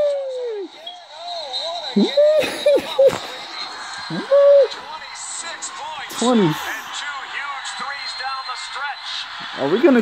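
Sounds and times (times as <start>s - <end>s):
man whooping and yelling: 0.0s - 0.8s, 2.0s - 3.2s, 4.1s - 4.9s
game broadcast from a phone: 0.0s - 10.0s.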